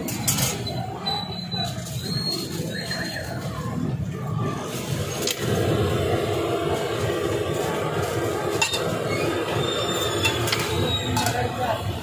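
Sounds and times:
griddle rushing noise: 4.2 - 12.0.

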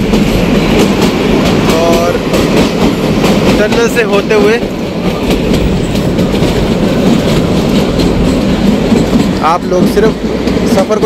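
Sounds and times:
train rumbling: 0.0 - 11.0
wheels clattering over rails: 0.0 - 11.0.

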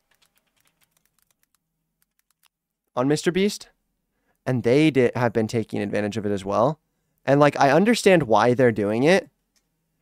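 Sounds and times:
keyboard typing: 0.0 - 2.6.

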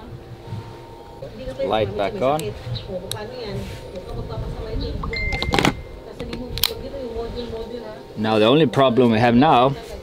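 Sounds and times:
short high beep: 5.1 - 6.0.

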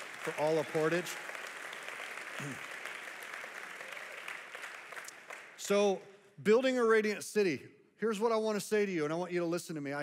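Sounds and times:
crowd applauding: 0.0 - 5.9.

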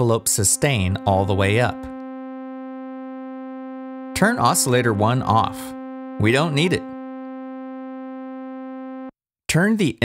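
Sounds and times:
buzzy synthesizer note: 0.0 - 9.1.

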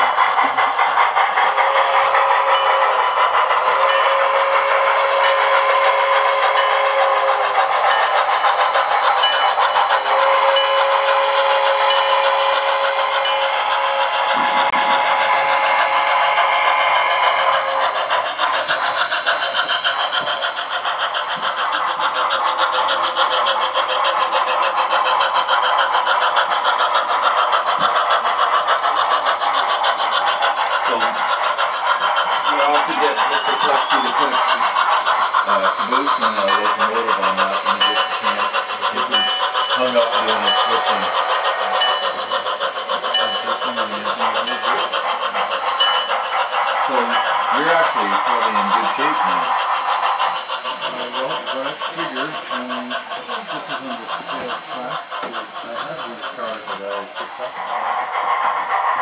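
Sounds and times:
model steam locomotive chuffing: 0.0 - 59.0.

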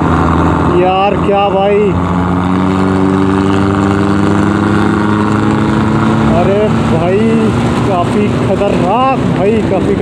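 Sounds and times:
motorcycle engine running: 0.0 - 10.0
wind and road noise: 0.0 - 10.0.

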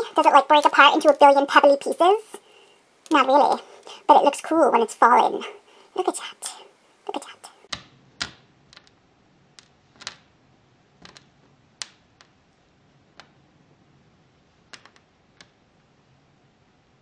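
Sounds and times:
pebble clumps clicking on tabletop: 11.0 - 12.4, 14.6 - 15.6.

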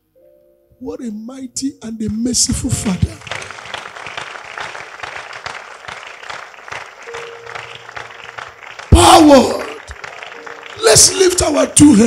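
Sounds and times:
congregation applauding: 2.7 - 12.0
man shouting loudly: 8.9 - 9.8, 10.8 - 12.0.

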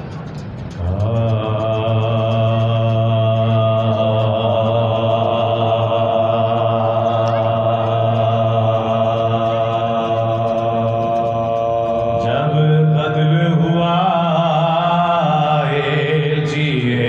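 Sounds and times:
man chanting a long low note: 0.8 - 17.0.

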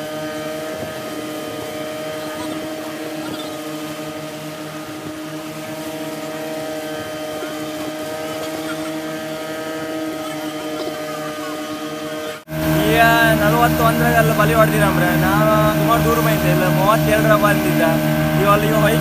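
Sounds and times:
boat engine droning: 0.0 - 19.0.

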